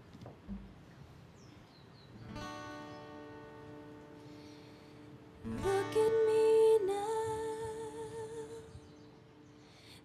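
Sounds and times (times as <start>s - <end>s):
acoustic guitar chord ringing: 2.3s - 6.9s.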